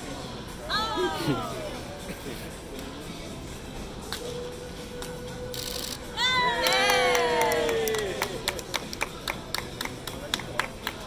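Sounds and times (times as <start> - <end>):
sharp claps: 4.0 - 4.3, 6.6 - 11.0
voices cheering in a whoop: 6.2 - 8.4.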